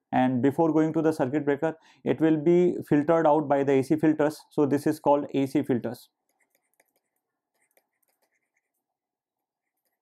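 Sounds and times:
handwriting ticks: 6.2 - 8.8, 9.6 - 10.0.

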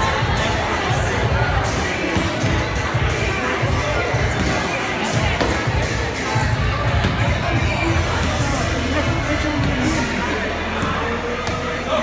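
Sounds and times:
crowd talking and calling out: 0.0 - 12.0
music: 0.0 - 12.0.

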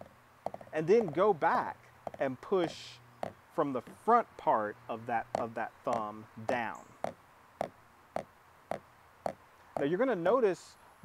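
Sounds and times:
drumstick buzz strokes on practice pad: 0.0 - 10.0.

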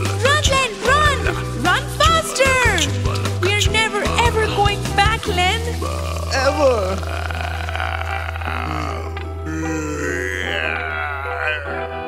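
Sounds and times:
spooky cartoon music: 0.0 - 12.0.

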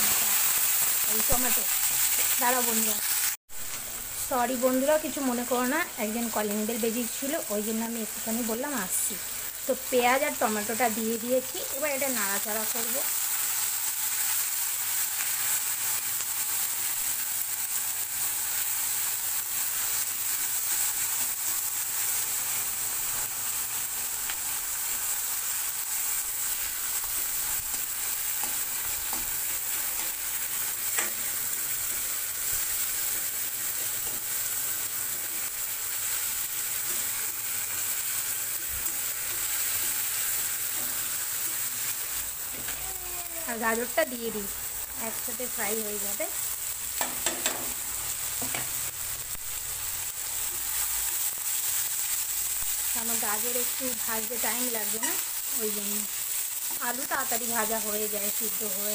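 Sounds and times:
vegetables sizzling in hot oil: 0.0 - 58.9.

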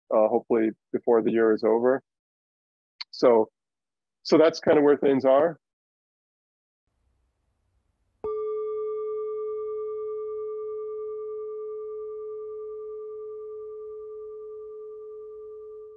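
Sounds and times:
bell-like tone ringing: 8.2 - 15.9.

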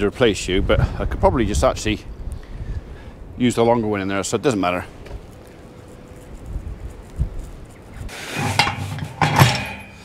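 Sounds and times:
metal gate hurdles clanking: 8.3 - 10.0.

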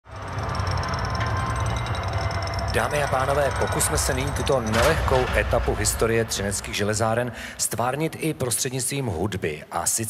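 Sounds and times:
low rumble: 0.1 - 8.6.

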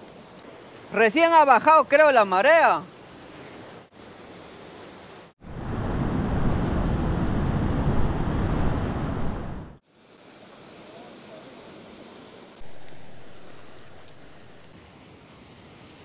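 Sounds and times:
sea surf: 0.0 - 16.0
wind rushing: 5.4 - 9.8, 12.6 - 14.7.

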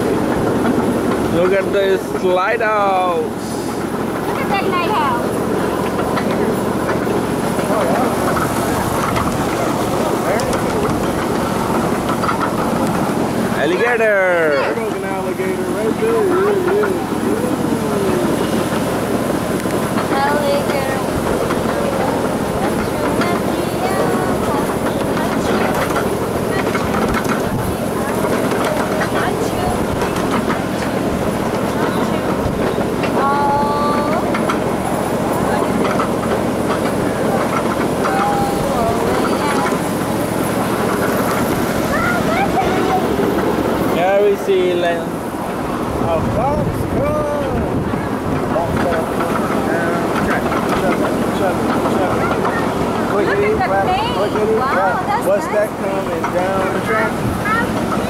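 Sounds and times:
small train wheels clattering: 0.0 - 58.0.

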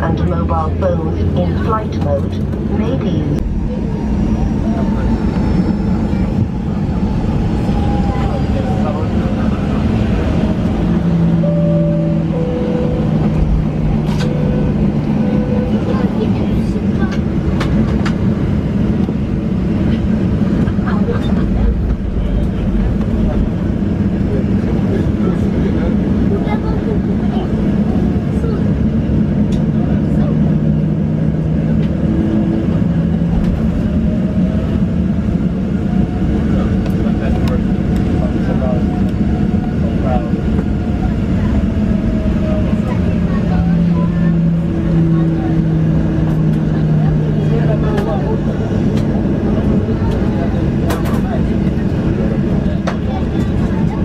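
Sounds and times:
aircraft cabin rumble: 0.0 - 54.0.

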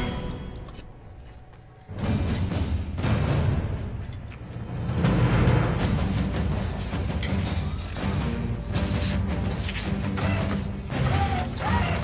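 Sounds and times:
background music: 0.0 - 12.0
mechanical whirs: 7.9 - 12.0.

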